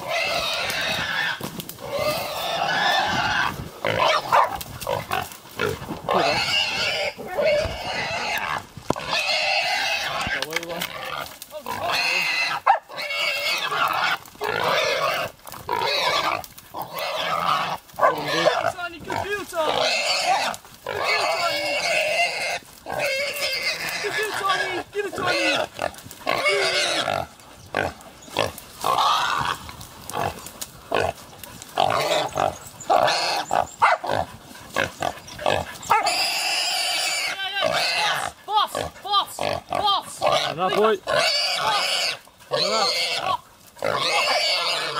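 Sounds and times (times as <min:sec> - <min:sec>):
pig squealing loudly: 0:00.0 - 0:29.6, 0:31.8 - 0:44.9.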